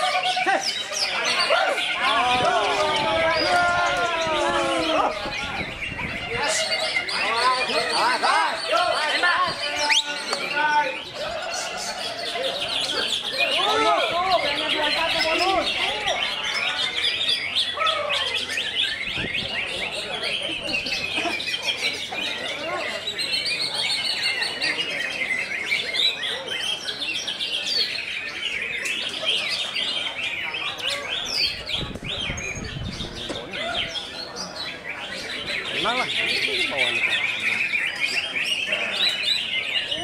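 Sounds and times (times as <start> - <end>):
other birdsong: 0.0 - 40.0
songbird chirping and warbling: 0.0 - 40.0.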